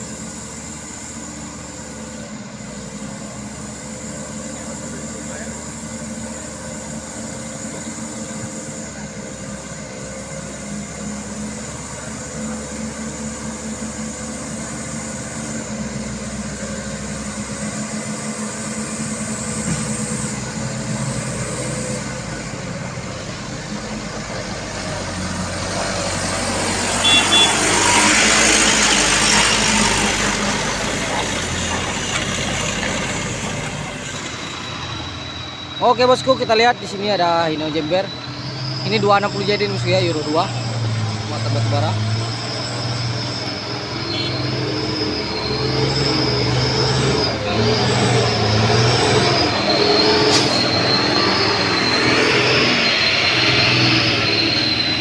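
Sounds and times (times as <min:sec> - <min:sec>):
diesel truck engine running: 0:00.0 - 0:55.0
truck passing with rushing noise: 0:00.0 - 0:55.0.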